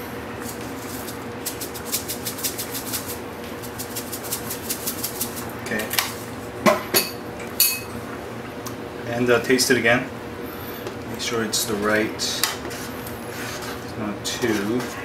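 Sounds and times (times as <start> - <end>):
utensils clinking against pot: 6.7 - 8.0.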